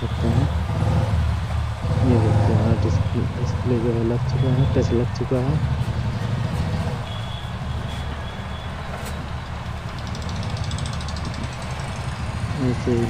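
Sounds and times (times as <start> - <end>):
low motor rumble: 0.0 - 8.1
rapid faint ticking: 9.4 - 13.0.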